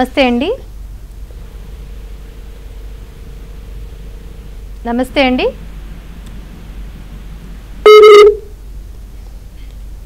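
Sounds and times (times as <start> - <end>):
telephone line beep: 7.8 - 8.5
phone line hiss: 7.8 - 8.6.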